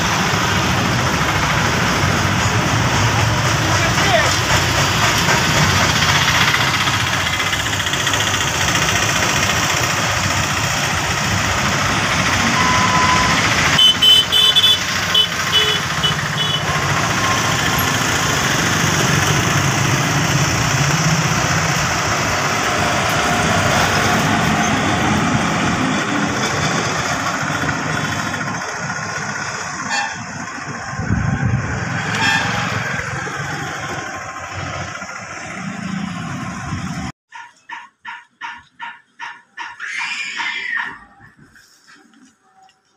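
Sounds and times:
motorcycles and cars passing: 0.0s - 37.1s
freight train rumbling: 0.0s - 41.6s
vehicle horn beeping: 12.6s - 17.5s, 29.9s - 30.3s, 32.1s - 32.7s.

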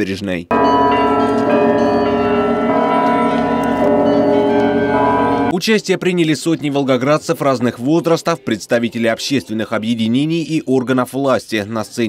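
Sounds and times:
church bells pealing: 0.5s - 5.5s.

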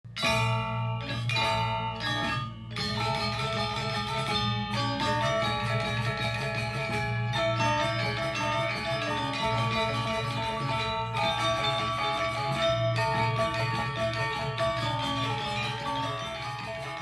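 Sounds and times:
gamelan metallophones ringing: 0.1s - 17.0s.

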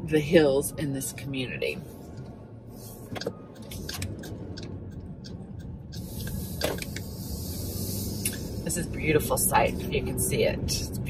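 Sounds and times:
road and engine rumble: 0.0s - 11.0s.

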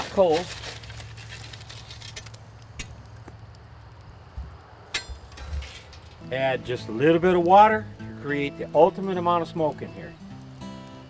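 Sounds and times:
shovel clinking on coals: 0.0s - 3.0s, 4.9s - 6.5s
steady low hum: 2.1s - 8.1s.

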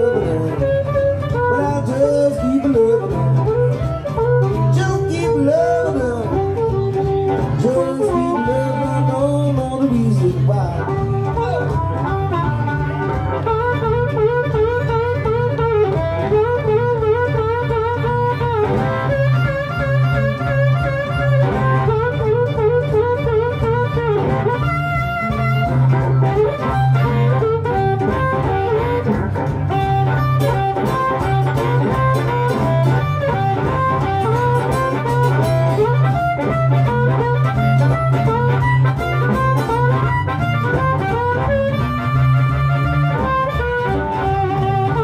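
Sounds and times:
acoustic-electric guitar accompaniment: 0.0s - 45.0s
blues harmonica solo: 0.0s - 45.0s.

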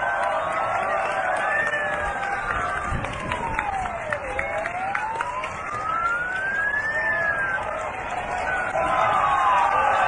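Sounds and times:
ambulance siren wailing: 0.0s - 10.0s
large crowd noise: 0.0s - 10.0s.

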